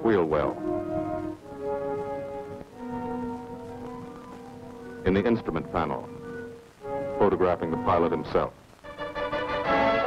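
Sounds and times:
brass sustained chords: 0.4 - 10.0.

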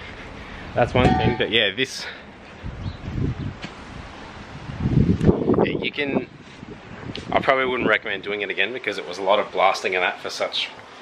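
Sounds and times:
wind rumbling on microphone: 0.0 - 1.7, 2.4 - 8.5.

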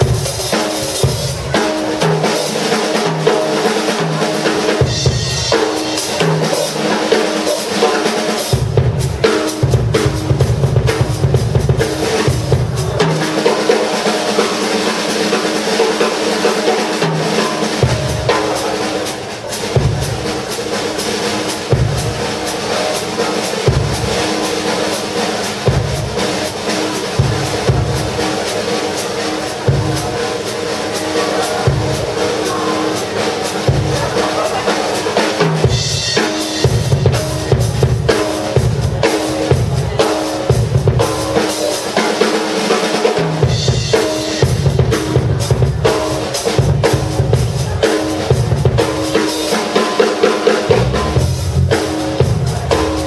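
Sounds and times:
drum kit playing: 0.0 - 53.0.

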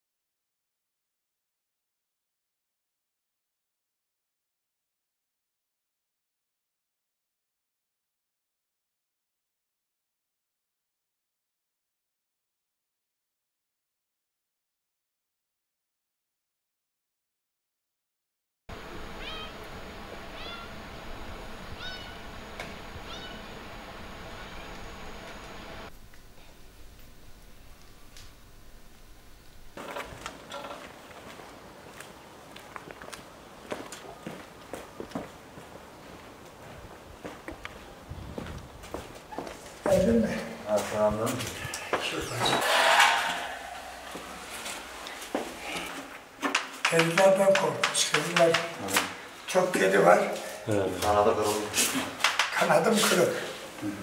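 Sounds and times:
steady background noise: 18.7 - 54.0
cat meowing: 19.2 - 19.6, 20.4 - 20.7, 21.8 - 22.2, 23.1 - 23.5
metal door scraping open: 42.3 - 44.6.

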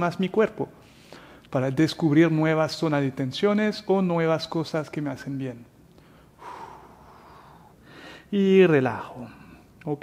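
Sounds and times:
man breathing out softly: 6.0 - 8.3.

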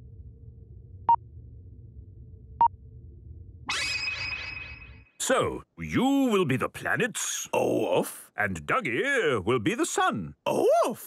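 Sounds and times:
low electronic hum: 0.0 - 5.1
shimmering sparkle sound: 3.7 - 5.2.

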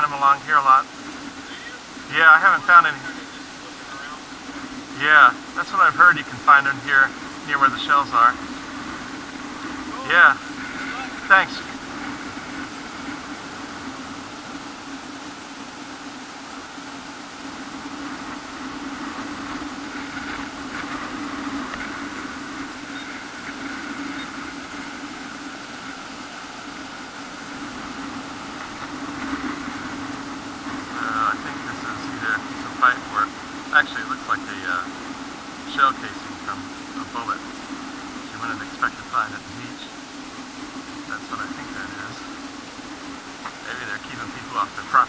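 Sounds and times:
rapid electronic pulses: 0.0 - 45.0
steady electronic hum: 0.0 - 45.0.

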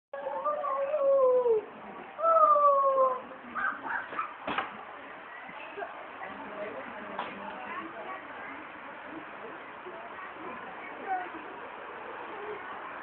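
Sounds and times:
brief knock: 4.4 - 4.7.

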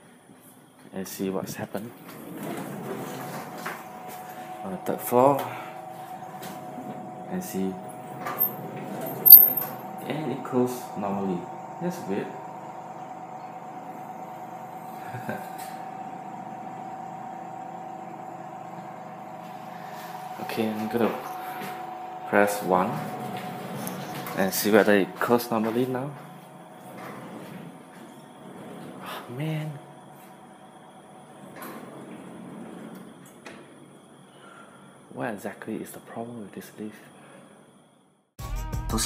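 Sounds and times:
lift machine hum with whine: 0.0 - 38.3.

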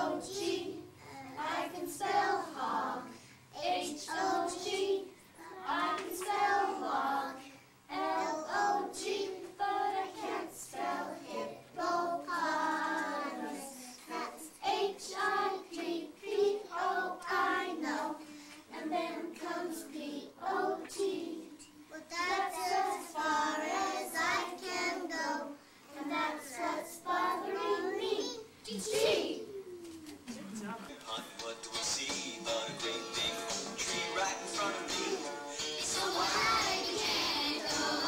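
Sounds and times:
children singing in unison: 0.0 - 28.3, 33.8 - 38.0.

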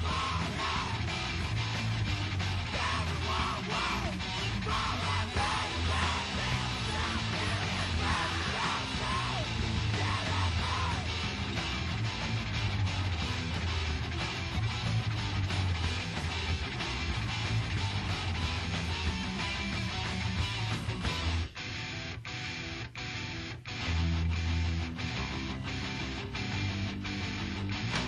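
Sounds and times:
bass guitar: 0.0 - 28.0
drums: 0.0 - 28.0
electric guitar: 0.0 - 28.0.

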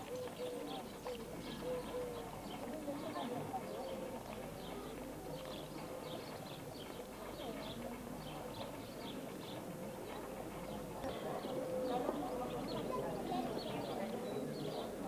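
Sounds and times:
murmur of distant voices: 0.0 - 15.0.

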